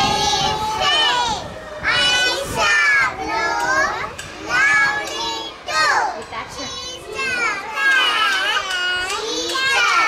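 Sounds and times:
children chanting a rhyme: 0.0 - 10.0.

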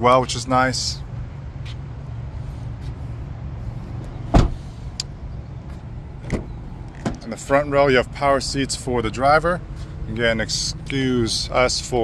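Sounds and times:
steady low hum: 0.0 - 12.0
car door shutting thud: 4.3 - 4.7.

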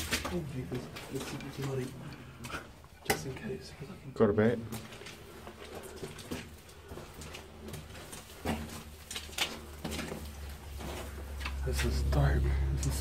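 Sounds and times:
footsteps on rocky floor: 4.7 - 12.1.

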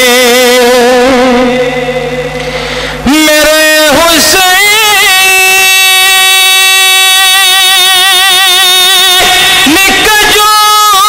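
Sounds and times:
man singing long note: 0.0 - 11.0.

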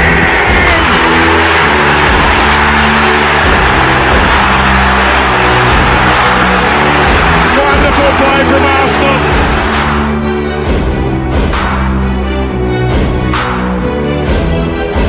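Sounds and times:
stadium crowd cheering: 0.0 - 12.6
electronic music with bass notes: 0.0 - 15.0
commentator speaking: 7.5 - 9.3.

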